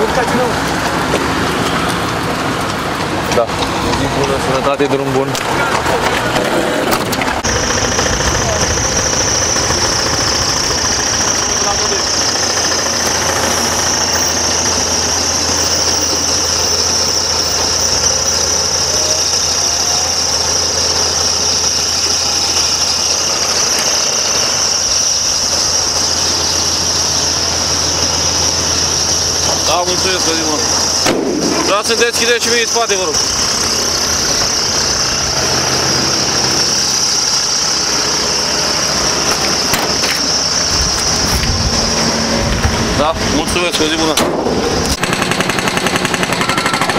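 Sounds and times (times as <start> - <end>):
high-pitched whine: 0.0 - 46.9
vehicle engine idling: 0.0 - 46.9.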